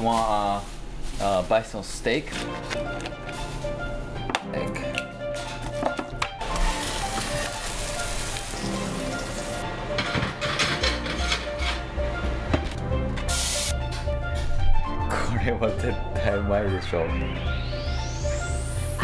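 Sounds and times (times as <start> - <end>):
background music: 0.0 - 19.0
food sizzling in a pan: 6.4 - 9.6.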